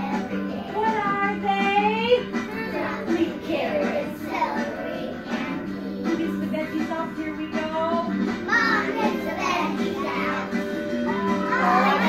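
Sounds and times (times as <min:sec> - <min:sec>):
children singing together: 0:00.0 - 0:01.1, 0:02.4 - 0:06.4, 0:08.4 - 0:12.0
recorded backing music: 0:00.0 - 0:12.0.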